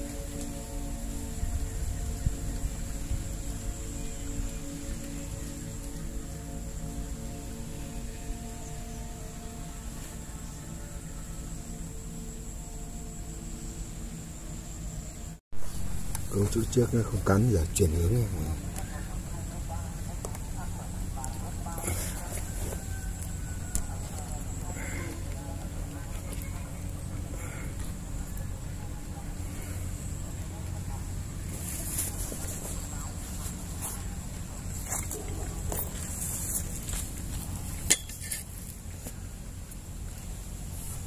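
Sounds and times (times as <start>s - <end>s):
faint high steady tone: 0.0s - 41.0s
low outdoor rumble: 0.0s - 41.0s.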